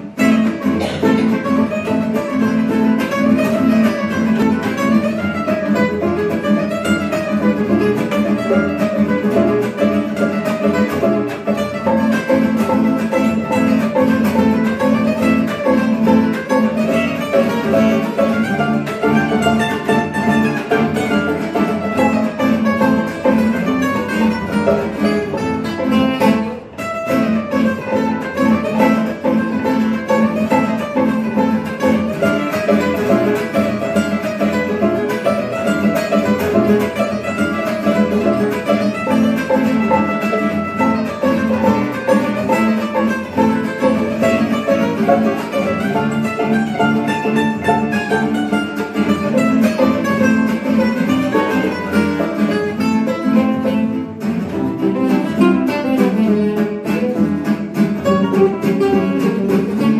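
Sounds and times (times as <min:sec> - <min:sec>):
acoustic guitars playing waltz: 0:00.0 - 0:59.9.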